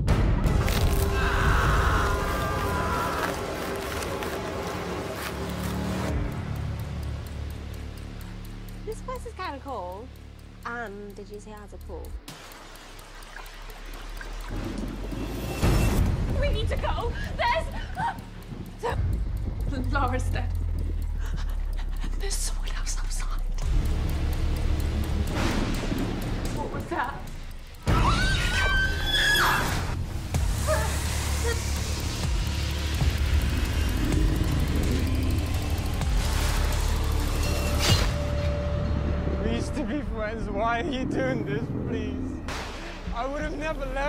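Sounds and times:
horror score music: 0:00.0 - 0:44.0
high held vocal cry: 0:01.1 - 0:03.6
heavy low rumble: 0:29.9 - 0:44.0.

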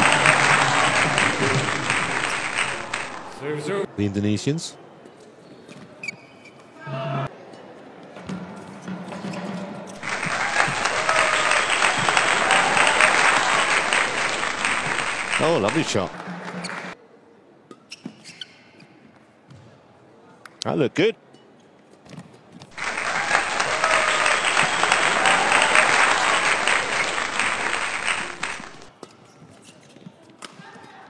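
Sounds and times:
low hall hush: 0:00.0 - 0:04.0, 0:10.0 - 0:17.0, 0:22.7 - 0:28.9
shoe squeak on court floor: 0:05.4 - 0:06.8, 0:17.7 - 0:19.0, 0:29.0 - 0:30.3.

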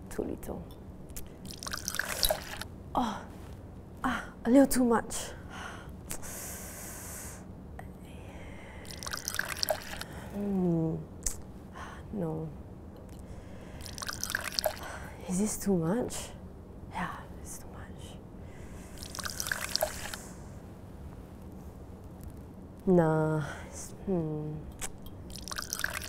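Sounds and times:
liquid trickling into glass tube: 0:01.4 - 0:02.7, 0:08.8 - 0:10.2, 0:13.8 - 0:14.9, 0:18.9 - 0:20.3, 0:24.8 - 0:26.0.

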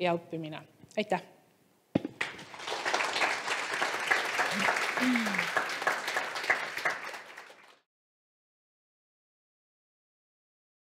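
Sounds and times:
audience applauding: 0:02.2 - 0:07.9.

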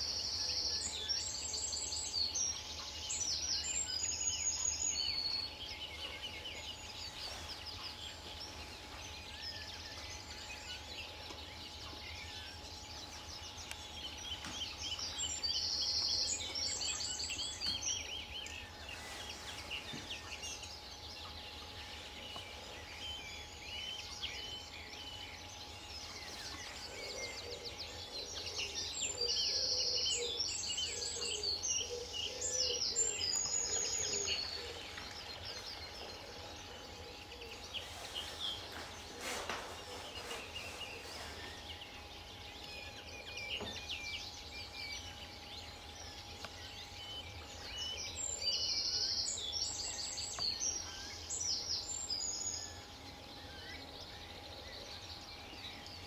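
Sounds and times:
bird twittering song: 0:00.0 - 0:56.0.

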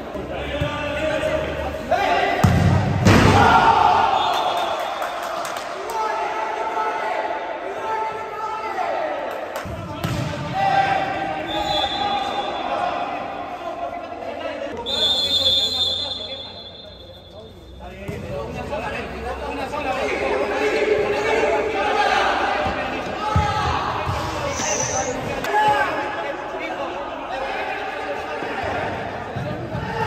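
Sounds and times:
people shouting: 0:03.2 - 0:04.3.

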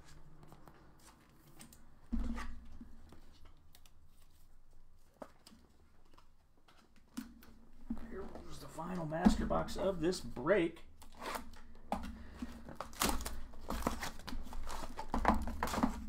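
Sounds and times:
card packs rustling: 0:07.6 - 0:10.2, 0:11.0 - 0:16.0.

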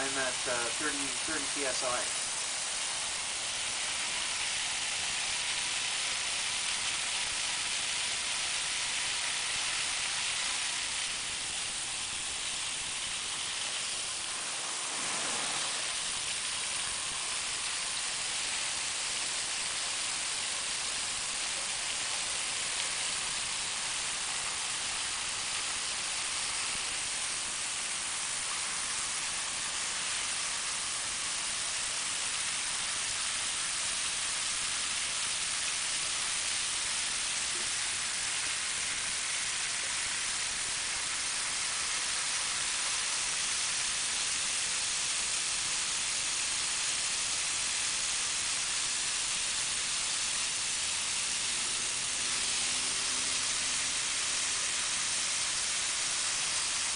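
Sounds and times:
hose nozzle spraying water: 0:00.0 - 0:56.9.

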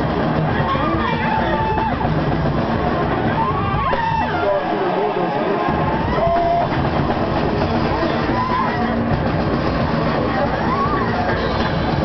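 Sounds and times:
band playing loud noise with drums: 0:00.0 - 0:12.0
rising pitched wail: 0:00.5 - 0:12.0.

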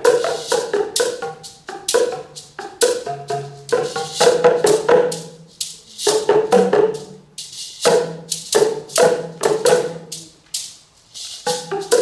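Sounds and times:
shaker hissing: 0:00.0 - 0:12.0.

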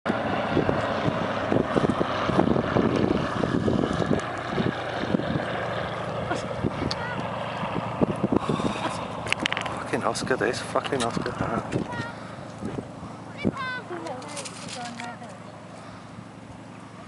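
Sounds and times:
propeller plane engine droning: 0:00.0 - 0:17.0
wind buffeting microphone: 0:00.1 - 0:15.6.

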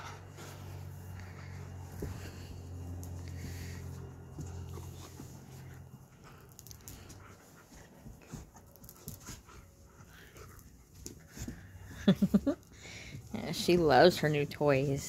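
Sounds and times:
dog breathing hard: 0:00.0 - 0:08.7
low steady hum: 0:00.0 - 0:15.0.

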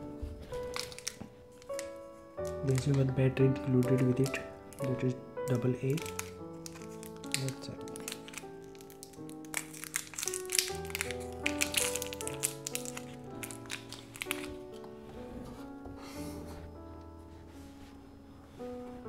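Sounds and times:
background music held notes: 0:00.0 - 0:19.0
packaging crinkling and tearing: 0:00.4 - 0:14.9.

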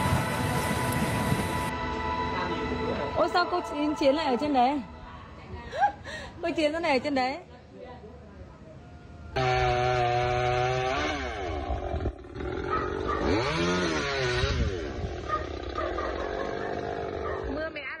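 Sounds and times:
chainsaw engine running: 0:09.4 - 0:17.8.

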